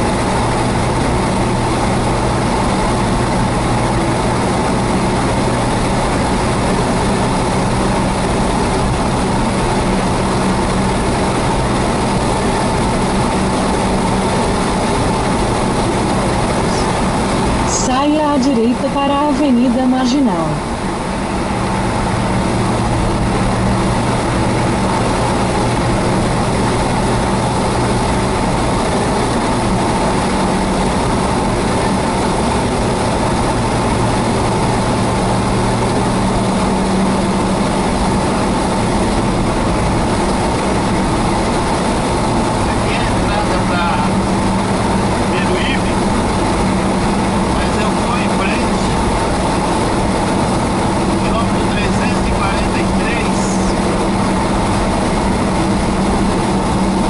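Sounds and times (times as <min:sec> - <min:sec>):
car engine drone: 0:00.0 - 0:57.0
tyre and road noise: 0:00.0 - 0:57.0.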